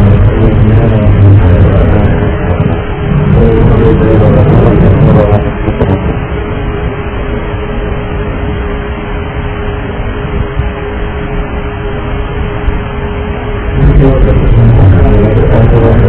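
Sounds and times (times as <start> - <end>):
constant electrical hum: 0.0 - 16.0
muffled airliner cabin noise: 0.0 - 16.0.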